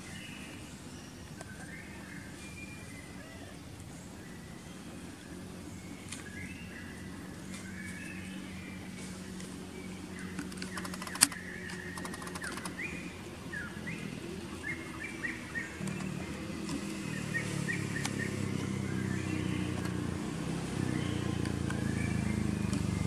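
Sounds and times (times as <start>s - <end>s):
small birds chirping: 0.0s - 23.0s
steady low hum: 0.0s - 23.0s.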